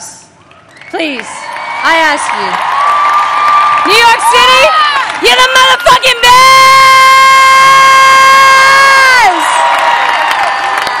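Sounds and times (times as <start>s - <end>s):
crowd cheering: 0.4s - 11.0s
woman shouting into a microphone: 3.8s - 9.4s.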